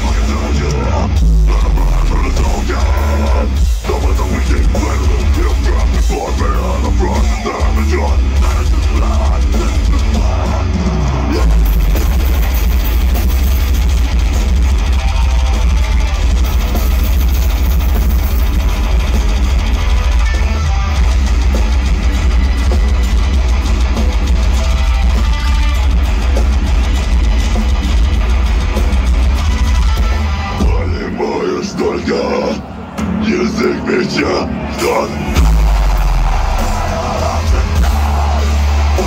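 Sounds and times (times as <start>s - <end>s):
heavy booming bass: 0.0s - 31.2s, 35.1s - 39.0s
distorted guitars: 0.0s - 39.0s
drums: 0.0s - 39.0s
live metal band playing: 0.0s - 39.0s.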